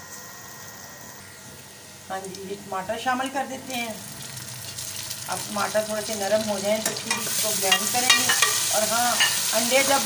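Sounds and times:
onions sizzling in hot oil: 3.2 - 10.0.

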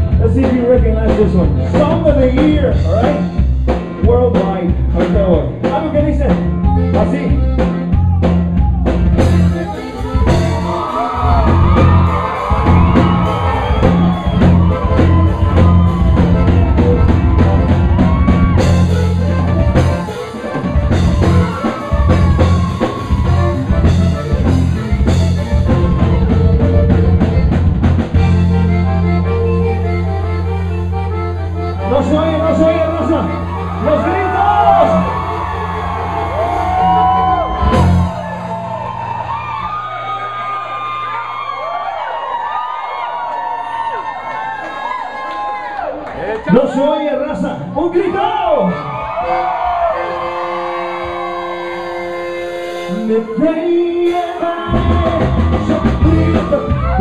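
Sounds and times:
drum kit: 0.0 - 39.8, 54.0 - 57.0
button accordion melody: 0.0 - 40.6, 47.9 - 57.0
bass line: 0.0 - 42.6, 47.3 - 57.0.

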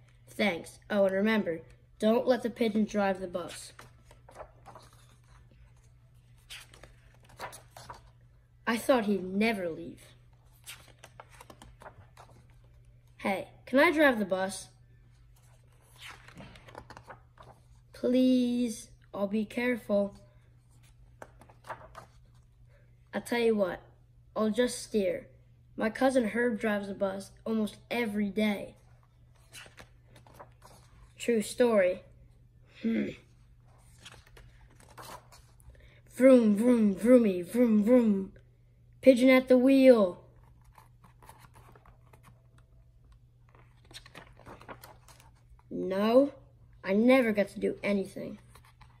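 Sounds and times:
paper page turning: 3.5 - 8.2, 10.3 - 12.9, 15.3 - 17.8, 20.8 - 22.4, 29.4 - 31.2, 33.7 - 35.6, 40.4 - 45.7, 48.4 - 49.0.

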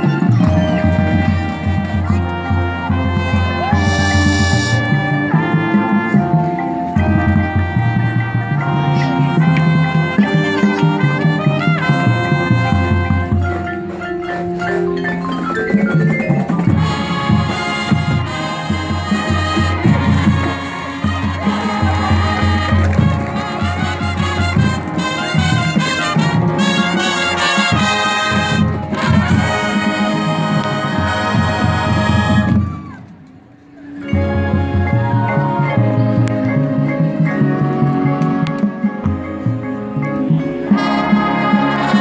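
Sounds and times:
brass horns: 0.0 - 33.1, 33.8 - 42.0
drums: 0.0 - 42.0.

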